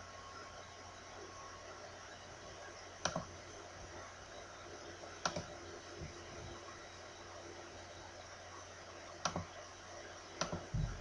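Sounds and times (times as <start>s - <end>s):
computer mouse clicks: 3.0s - 3.3s, 5.2s - 5.6s, 9.2s - 9.5s, 10.4s - 10.7s.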